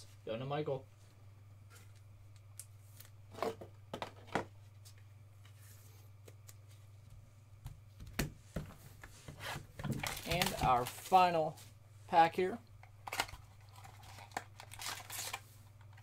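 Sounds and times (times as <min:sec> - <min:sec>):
steady low hum: 0:00.0 - 0:16.0
cards clicking and rubbing: 0:13.1 - 0:16.0.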